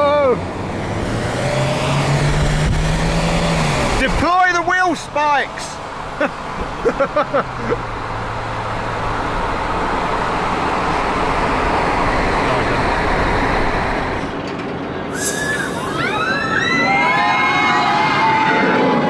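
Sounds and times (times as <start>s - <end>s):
car road and engine noise: 0.0s - 17.5s
roller coaster train passing: 0.0s - 19.0s
riders screaming: 15.3s - 19.0s.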